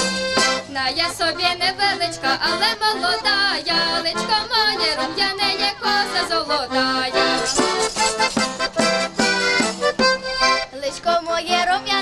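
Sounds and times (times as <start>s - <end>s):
accordion folk accompaniment: 0.0s - 12.0s
person singing: 0.7s - 8.1s, 10.7s - 12.0s.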